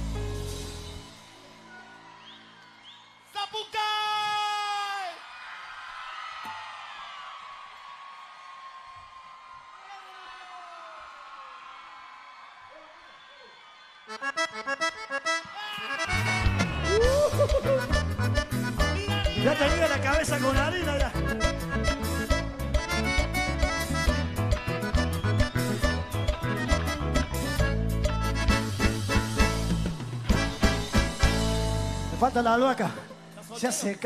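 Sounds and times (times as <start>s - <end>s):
accordion chords: 14.1s - 33.8s.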